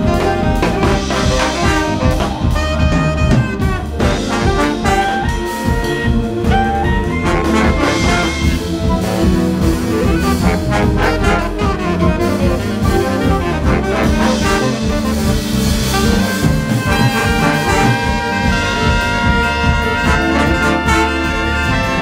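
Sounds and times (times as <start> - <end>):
jazz big band playing: 0.0 - 22.0.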